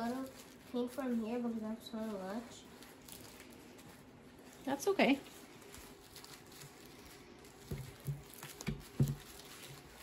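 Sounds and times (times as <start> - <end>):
paintbrush patting bubble wrap: 0.0 - 10.0.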